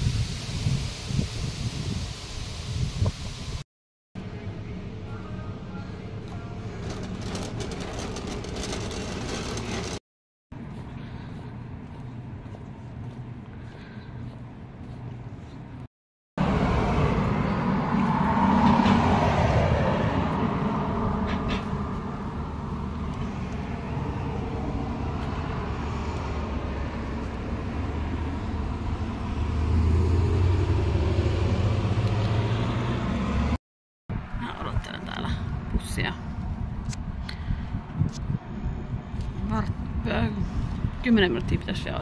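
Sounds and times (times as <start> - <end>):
deep vehicle engine rumble: 4.2 - 42.0
car passing: 16.4 - 33.6.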